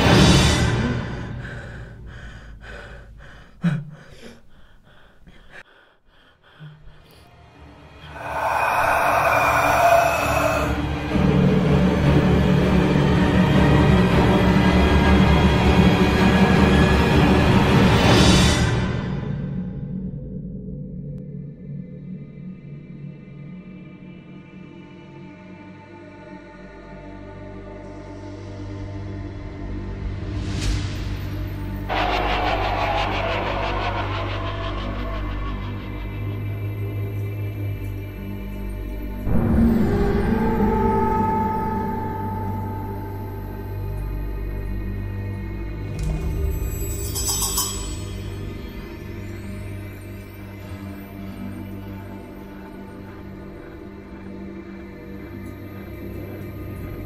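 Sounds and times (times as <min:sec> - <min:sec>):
low droning scary music: 0:00.0 - 0:57.0
low steady drone: 0:31.2 - 0:46.6
loud rush of noise: 0:31.9 - 0:36.2.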